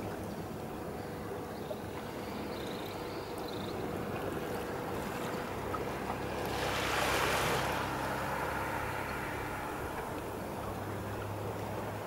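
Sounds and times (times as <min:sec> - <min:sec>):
sea water lapping at shore: 0:00.0 - 0:12.0
small wave washing in: 0:04.9 - 0:12.0.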